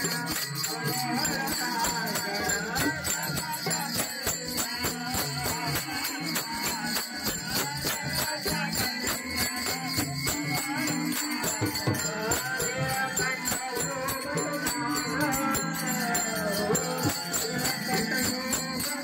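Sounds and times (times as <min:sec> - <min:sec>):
hand-played barrel drum: 0:00.0 - 0:19.0
person singing: 0:00.0 - 0:19.0
small hand cymbals: 0:00.0 - 0:19.0.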